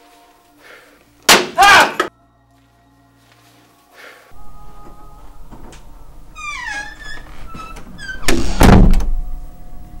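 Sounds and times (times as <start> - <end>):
door creaking: 5.5 - 9.2
door slamming: 6.4 - 9.2.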